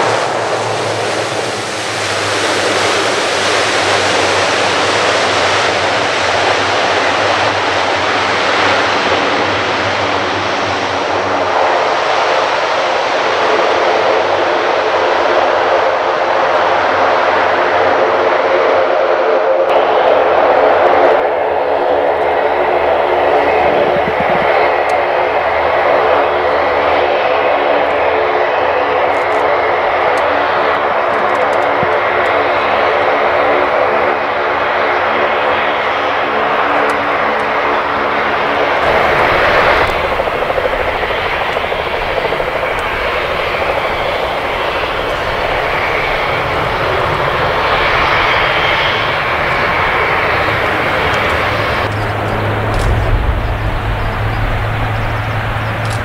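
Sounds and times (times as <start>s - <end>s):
broad rushing noise with rumble: 0.0s - 56.0s
turboprop engines humming: 0.0s - 56.0s.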